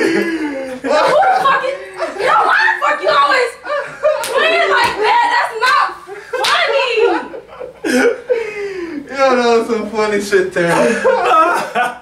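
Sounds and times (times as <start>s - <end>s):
overlapping voices: 0.0s - 9.1s
people laughing: 0.0s - 9.1s, 10.6s - 12.0s
slaps on bare skin: 6.4s - 6.6s.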